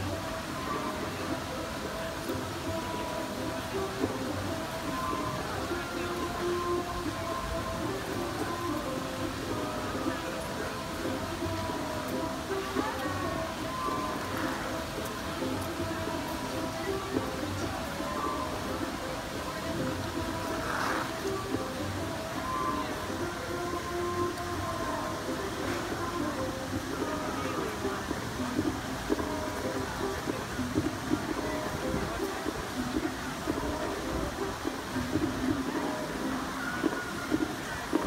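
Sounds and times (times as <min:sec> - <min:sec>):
crowd murmuring: 0:00.0 - 0:38.0
music playing: 0:00.0 - 0:38.0.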